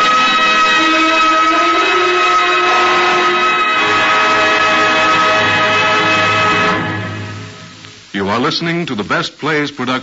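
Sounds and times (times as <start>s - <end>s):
orchestra with brass sustained chord: 0.0s - 7.8s.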